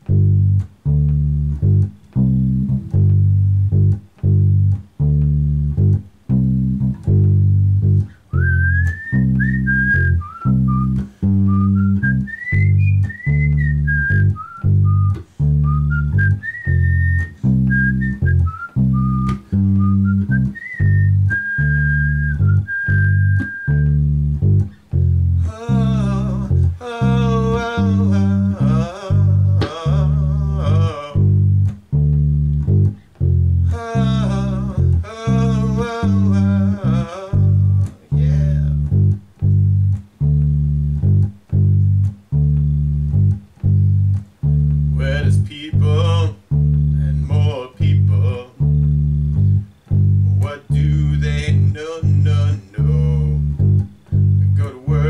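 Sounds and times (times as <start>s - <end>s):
electric bass guitar notes: 0.0s - 55.0s
high whistle-like melody: 8.3s - 24.1s.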